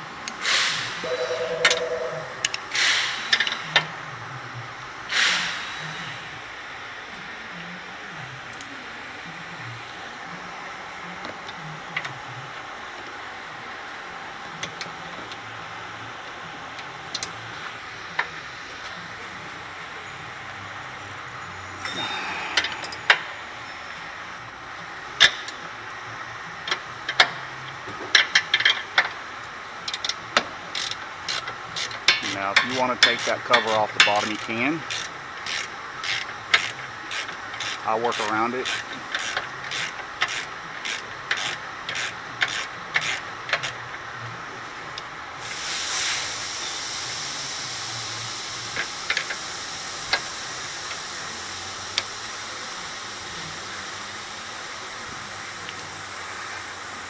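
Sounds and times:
workshop background noise: 0:00.0 - 0:57.0
wrenches clicking and clinking: 0:29.8 - 0:43.8.

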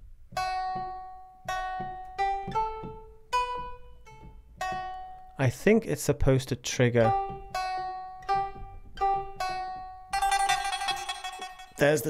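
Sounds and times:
plucked lute notes: 0:00.3 - 0:05.4, 0:06.9 - 0:12.0.

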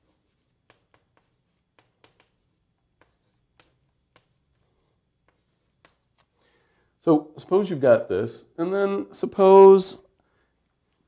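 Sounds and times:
writing taps on board: 0:00.6 - 0:04.4, 0:05.2 - 0:06.1.

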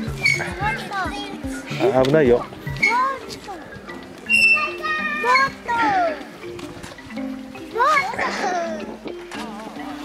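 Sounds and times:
children calling and shouting: 0:00.0 - 0:10.0.

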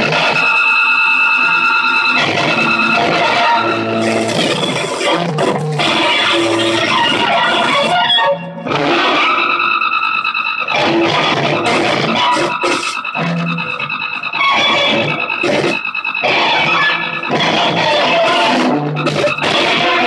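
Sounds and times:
held high-pitched tones: 0:00.0 - 0:20.0
loud dense electronic noise: 0:00.0 - 0:20.0.

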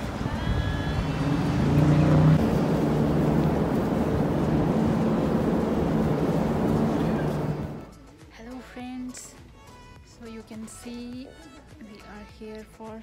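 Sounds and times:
cars driving past: 0:00.0 - 0:07.9.

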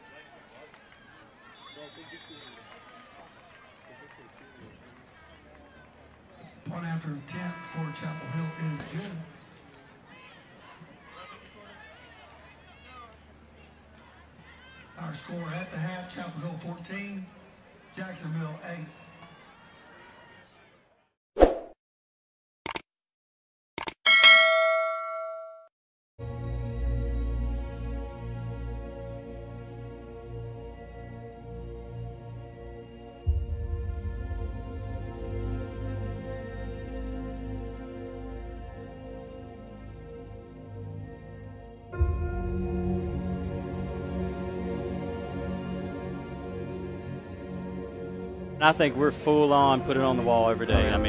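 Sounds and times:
notification bell ding: 0:24.1 - 0:25.7.

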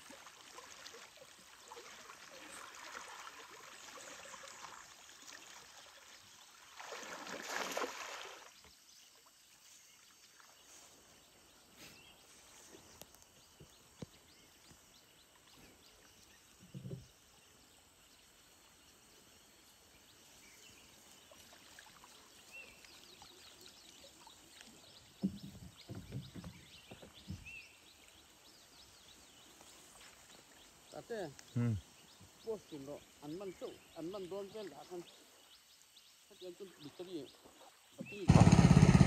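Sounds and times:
low water splashes: 0:00.0 - 0:08.7
water sloshing around wader: 0:00.0 - 0:11.4, 0:20.4 - 0:31.3.

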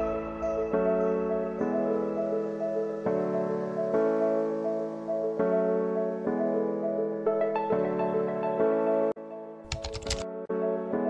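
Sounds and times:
soft electric piano music: 0:00.0 - 0:11.0
keyboard typing clicks: 0:09.7 - 0:10.3.

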